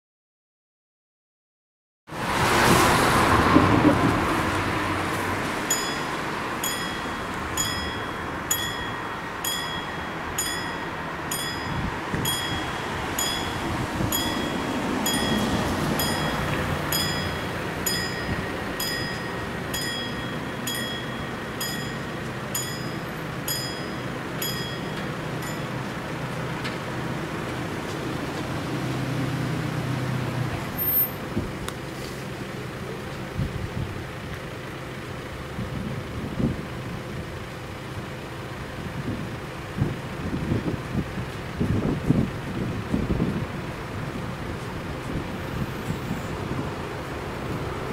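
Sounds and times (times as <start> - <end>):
road traffic: 2.1 - 47.9
vehicle engine: 2.1 - 47.9
level crossing bell ringing: 5.7 - 26.1.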